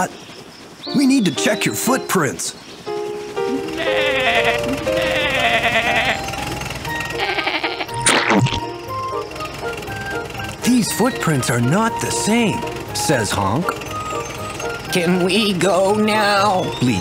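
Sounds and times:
cartoon background music: 0.9 - 17.0
sheep bleating: 3.5 - 6.3, 7.1 - 8.1.

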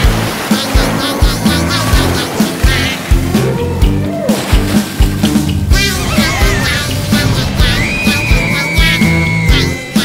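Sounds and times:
fast cartoon music with bass: 0.0 - 10.0.

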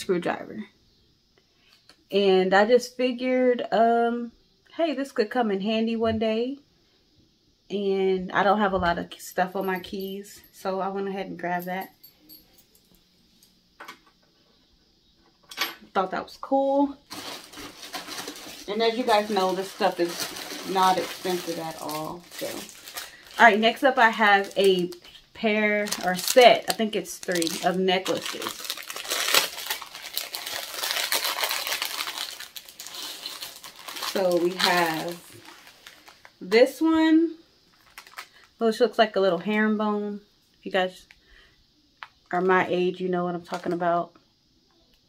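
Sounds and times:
plastic bag crinkling: 17.0 - 36.8, 37.7 - 38.6, 43.5 - 43.8.

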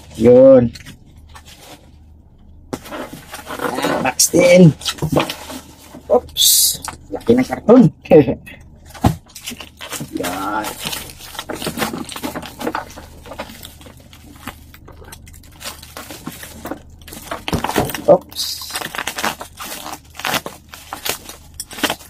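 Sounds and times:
cardboard and plastic rustling: 0.0 - 7.6, 8.6 - 22.0.

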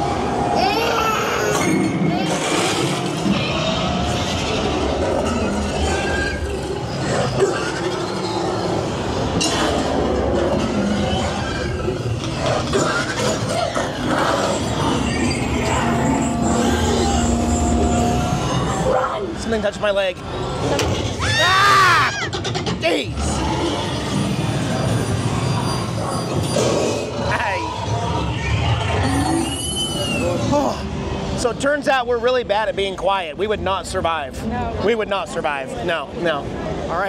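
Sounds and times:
eerie music and sound effects: 0.0 - 19.4.

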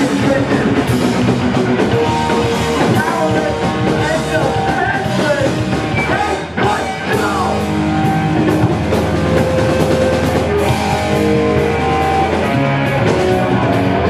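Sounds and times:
person singing: 0.0 - 0.9, 2.8 - 8.2
hardcore punk band playing live: 0.0 - 14.0.

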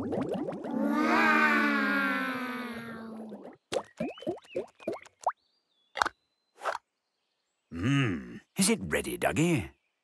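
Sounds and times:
cartoon plops rising in pitch: 0.0 - 5.4.

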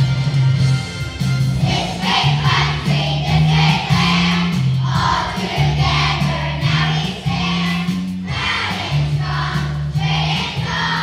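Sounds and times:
instrumental accompaniment: 0.0 - 11.0
children's choir singing: 1.6 - 11.0.

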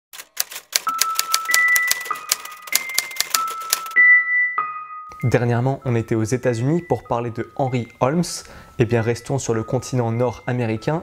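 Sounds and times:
typewriter keystrokes clattering: 0.1 - 4.0
bell-like ringing notes: 0.9 - 11.0.

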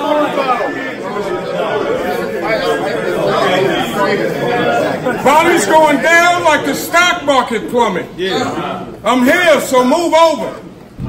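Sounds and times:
men talking over one another: 0.0 - 10.8.

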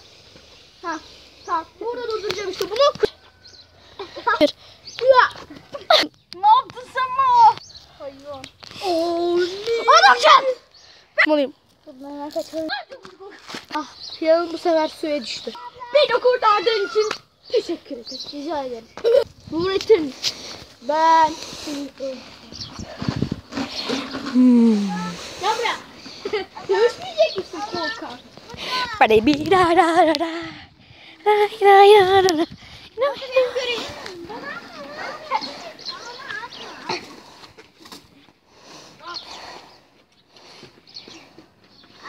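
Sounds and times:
boys talking and calling out: 0.8 - 39.8
child vocal sounds: 24.2 - 25.8
child growling: 24.3 - 25.2.

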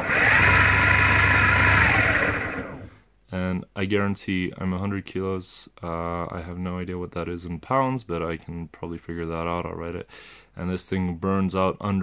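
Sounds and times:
electric motor spinning wheel: 0.0 - 2.9.

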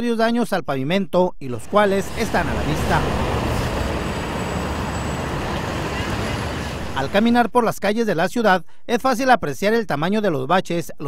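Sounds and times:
heavy vehicle engine rumble: 1.6 - 7.4.

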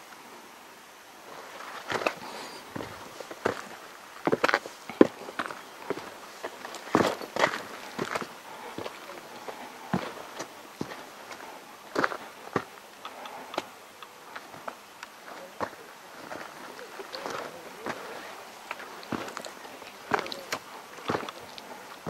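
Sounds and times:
footsteps on rocky track: 1.3 - 22.0.

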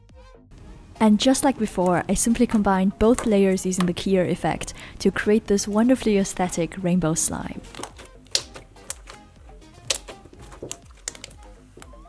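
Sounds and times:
soft background music: 0.0 - 12.0
slime clicking pops: 7.7 - 9.2, 9.8 - 11.4.

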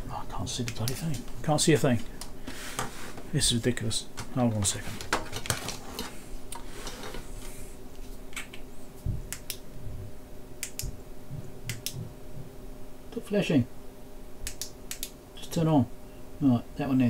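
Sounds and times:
faint steady hum: 0.0 - 17.0
clicks and clatter of wires: 4.2 - 7.2.

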